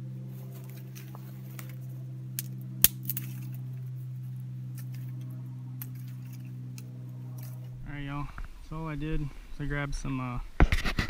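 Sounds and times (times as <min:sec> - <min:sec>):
steady low hum: 0:00.0 - 0:11.0
knife striking fire-starting stone: 0:02.4 - 0:03.6.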